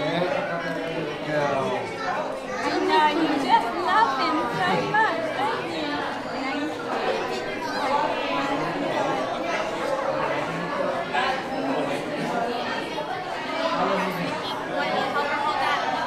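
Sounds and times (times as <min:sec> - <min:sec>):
people talking nearby: 0:00.0 - 0:16.0
restaurant crowd chatter: 0:00.0 - 0:16.0.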